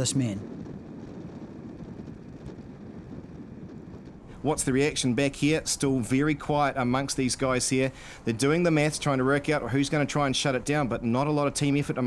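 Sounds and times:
wind and road noise rumble: 0.0 - 12.0.

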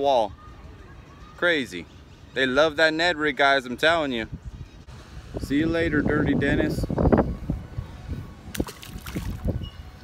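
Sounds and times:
fish splashing into water: 8.5 - 9.6.

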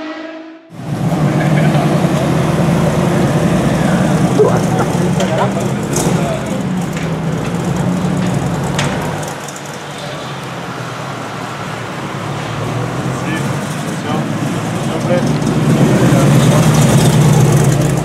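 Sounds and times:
car engine idling: 0.8 - 18.0.

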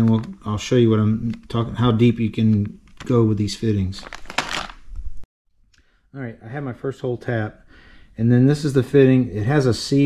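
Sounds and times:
plastic bag crinkling: 3.9 - 5.0.

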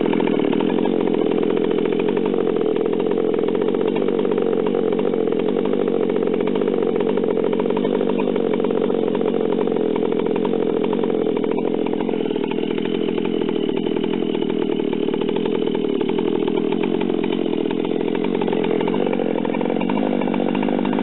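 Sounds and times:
chainsaw idling: 0.0 - 21.0.

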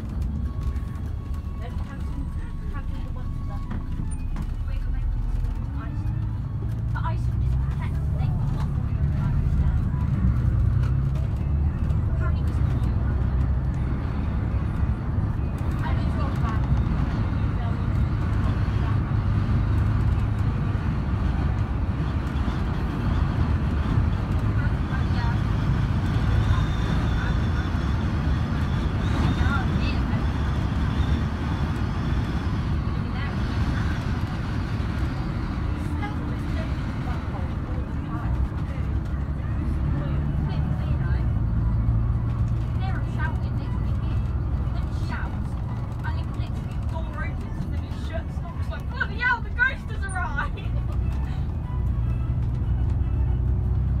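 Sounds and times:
coach diesel engine drone: 0.0 - 54.0
road and tyre noise: 0.0 - 54.0.

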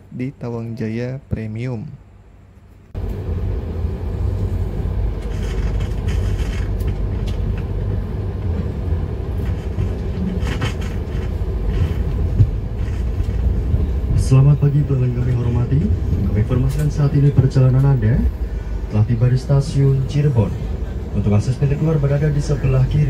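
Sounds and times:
train carriage rumbling on rails: 2.6 - 23.0.

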